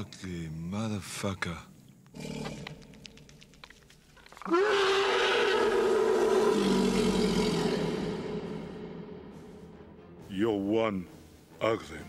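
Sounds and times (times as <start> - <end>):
rattle of clicks: 2.0 - 4.5
creature roar: 4.4 - 8.8.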